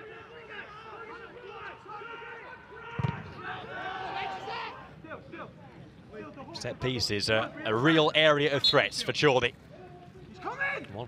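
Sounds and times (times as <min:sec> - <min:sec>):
players shouting and calling: 0:00.0 - 0:11.0.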